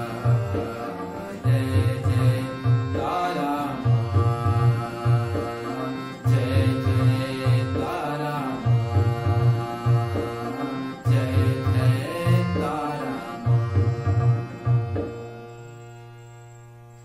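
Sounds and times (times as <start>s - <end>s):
man singing: 0.0s - 15.2s
harmonium chords: 0.0s - 17.0s.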